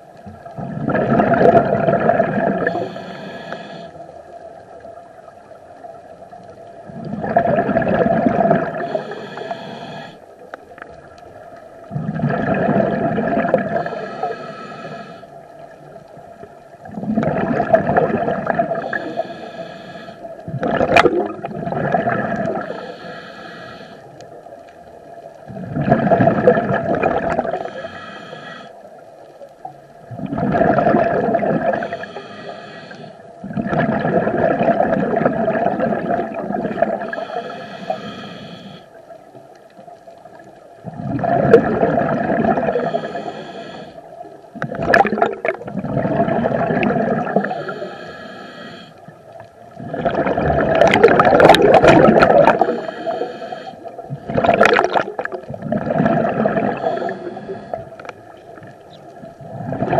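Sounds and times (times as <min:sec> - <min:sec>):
gurgle of exhaled bubbles: 0:00.2 - 0:03.0, 0:06.8 - 0:09.4, 0:11.8 - 0:14.2, 0:16.2 - 0:19.3, 0:20.4 - 0:22.9, 0:25.4 - 0:27.9, 0:30.0 - 0:32.0, 0:33.4 - 0:37.4, 0:40.0 - 0:43.2, 0:44.6 - 0:47.9, 0:49.6 - 0:59.9
diver breathing through regulator: 0:02.5 - 0:04.1, 0:08.6 - 0:10.4, 0:13.5 - 0:15.5, 0:18.4 - 0:20.7, 0:22.2 - 0:24.3, 0:27.3 - 0:28.9, 0:31.5 - 0:33.6, 0:36.2 - 0:39.1, 0:41.2 - 0:44.1, 0:46.8 - 0:58.7.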